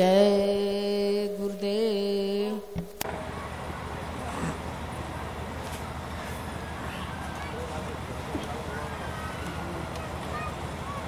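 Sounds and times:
faint indistinct voices: 3.0 - 11.0.

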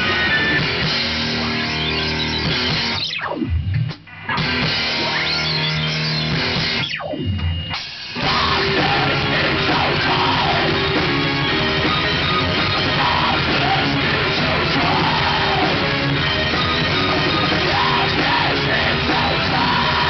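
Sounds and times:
heavy metal band playing: 0.0 - 20.0.

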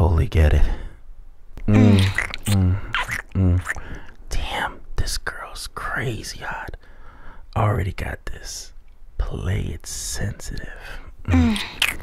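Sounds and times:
man humming: 1.7 - 3.9, 11.2 - 12.0
breathy whispering: 1.9 - 12.0.

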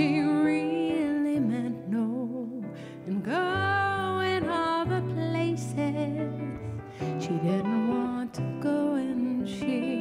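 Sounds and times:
electric guitar: 0.0 - 10.0
piano: 0.0 - 10.0
woman singing: 0.0 - 10.0.

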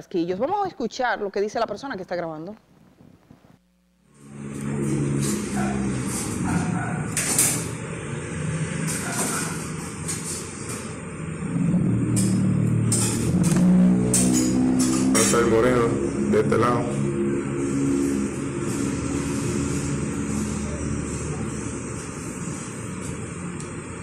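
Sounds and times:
motorcycle passing: 4.1 - 24.0
vehicle engines running: 4.1 - 24.0.

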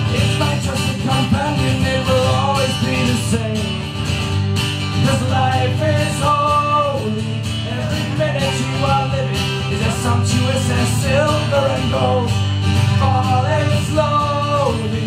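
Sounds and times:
acoustic guitars strummed: 0.0 - 15.0.

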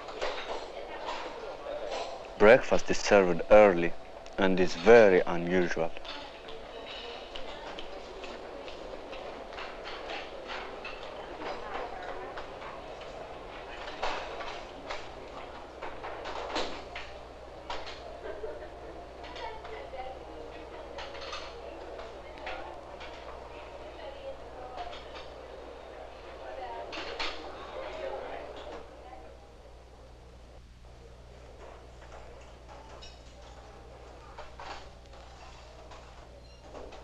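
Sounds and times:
murmur of voices: 0.0 - 36.0
film soundtrack hum and hiss: 0.0 - 37.0
dishes and cutlery clattering: 21.0 - 22.1.

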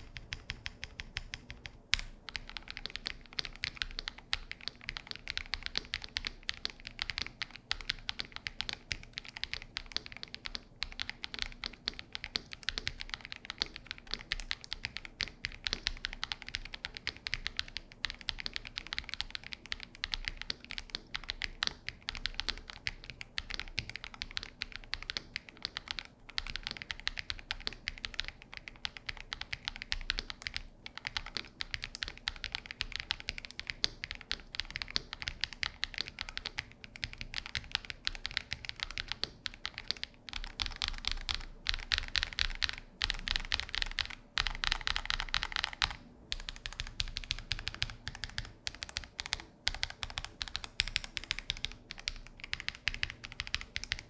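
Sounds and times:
keyboard typing clacks: 0.0 - 54.0.

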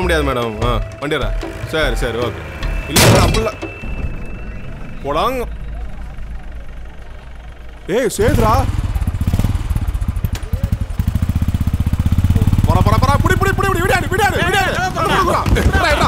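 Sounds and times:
low vehicle rumble: 0.1 - 16.0
motorcycle engine thumping: 1.4 - 16.0.

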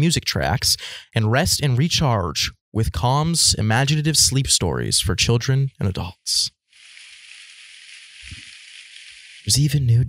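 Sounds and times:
thin hiss from phone speaker: 6.7 - 9.8.

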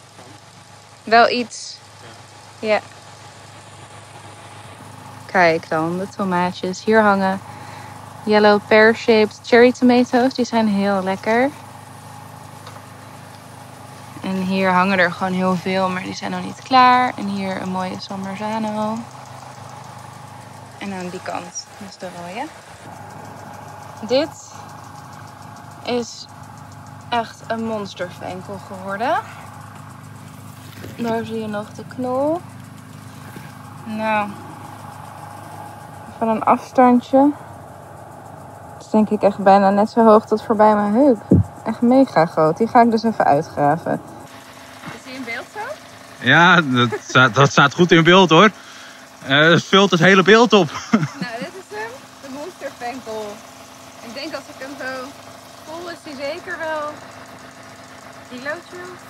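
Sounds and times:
faint hum: 0.0 - 59.0
low background rumble: 0.0 - 59.0.

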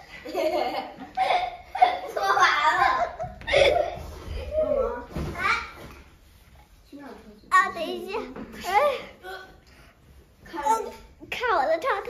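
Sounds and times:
young girl's voice: 10.5 - 12.0.

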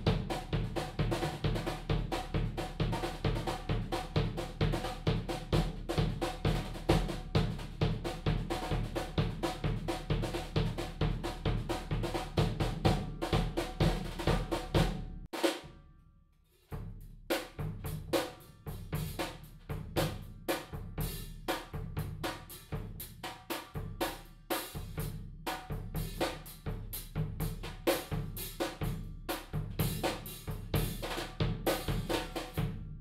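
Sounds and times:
drum kit played with brushes: 0.0 - 15.7, 16.7 - 33.0.

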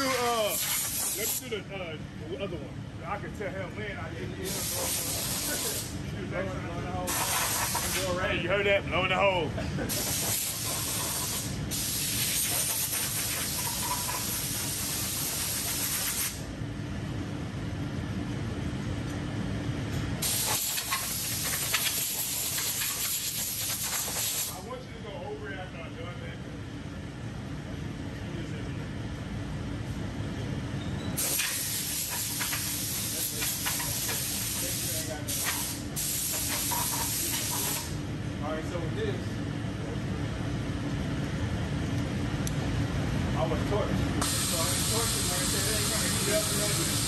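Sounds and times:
compressed air blow gun hissing: 0.5 - 1.4, 4.5 - 5.9, 7.1 - 8.0, 9.9 - 16.4, 20.2 - 24.5, 31.2 - 38.0, 44.2 - 47.0.

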